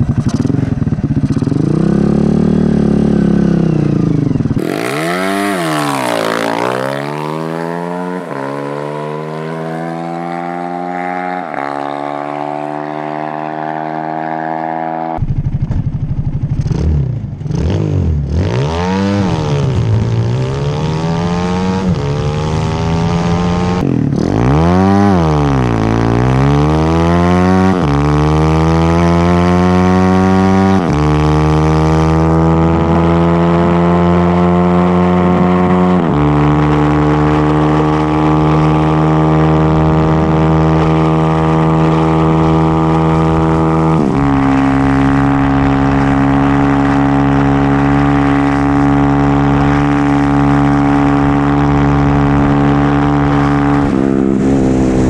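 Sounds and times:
go-kart engine accelerating hard: 0.0 - 55.0.

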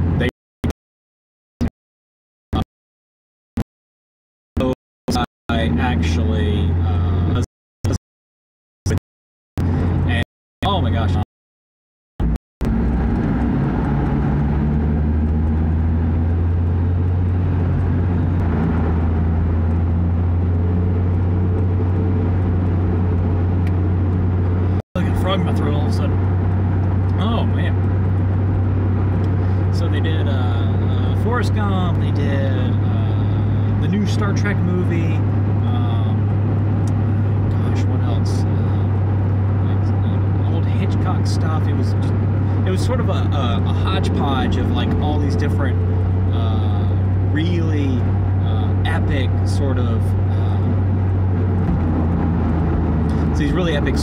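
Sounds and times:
car road and engine drone: 0.0 - 0.8, 4.6 - 8.0, 9.6 - 11.3, 12.2 - 54.0.

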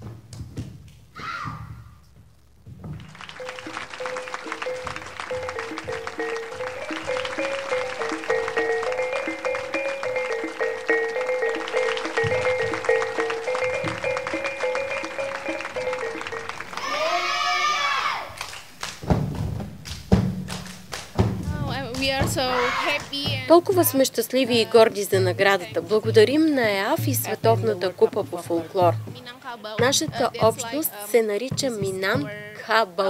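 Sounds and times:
loud thumps: 0.0 - 7.5, 18.7 - 32.5
folk ensemble music: 2.5 - 17.6, 18.7 - 33.0.

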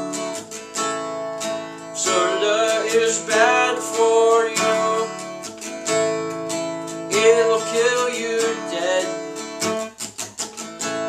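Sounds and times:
acoustic guitar strumming: 0.0 - 11.0
man singing: 1.9 - 5.5, 7.1 - 9.8.

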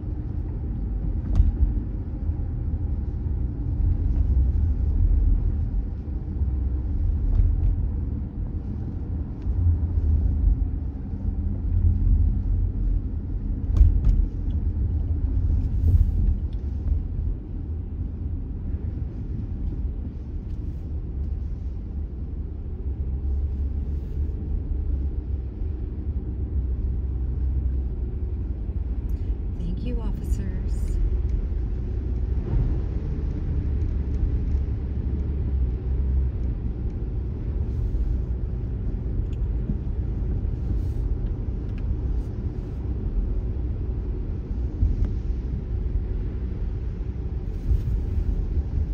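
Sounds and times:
car tyre and road noise: 0.0 - 48.9.

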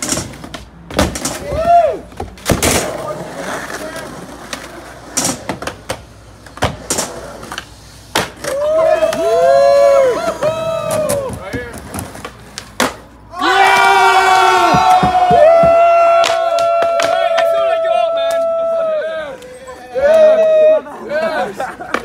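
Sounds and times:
people whooping and shouting: 1.4 - 2.1, 8.4 - 11.5, 13.3 - 21.6
skateboard knocking on ramp: 14.5 - 17.5.

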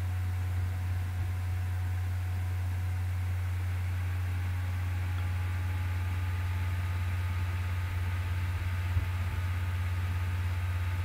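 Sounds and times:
low-pitched hum: 0.0 - 11.0.

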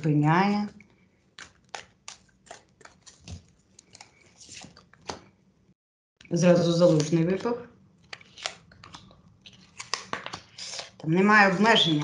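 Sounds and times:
cards clicking and rustling: 1.4 - 5.3, 8.0 - 11.0.

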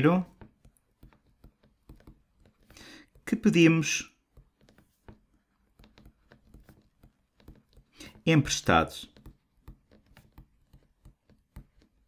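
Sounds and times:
stylus tapping on drawing tablet: 0.1 - 12.0.

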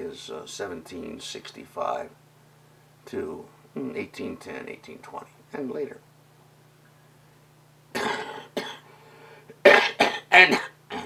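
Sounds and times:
elderly man coughing: 8.0 - 8.9, 9.6 - 11.0.

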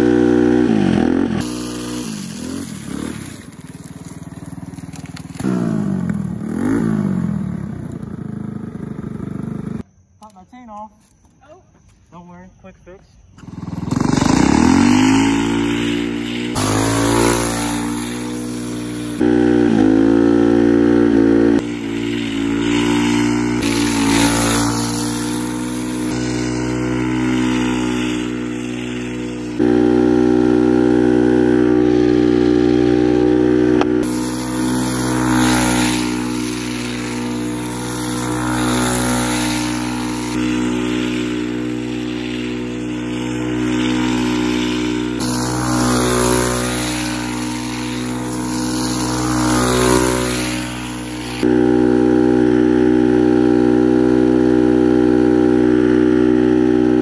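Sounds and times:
go-kart engine revving: 0.0 - 9.8, 13.4 - 57.0
metal sleeves scraping asphalt: 0.6 - 8.4, 9.0 - 19.3, 21.2 - 30.0, 33.7 - 51.5.

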